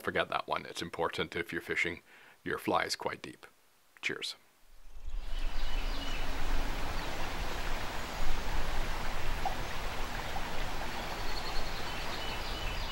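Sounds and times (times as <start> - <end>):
river rushing: 5.0 - 12.9.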